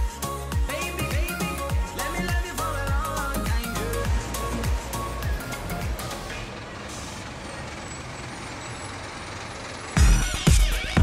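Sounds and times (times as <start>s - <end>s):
music with bass beat: 0.0s - 6.5s, 10.0s - 11.0s
street traffic: 0.0s - 11.0s.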